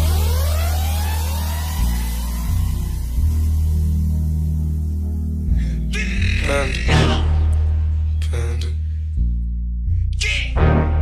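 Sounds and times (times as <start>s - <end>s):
rising synth sweep: 0.0s - 8.2s
deep sub-bass note: 0.0s - 11.0s.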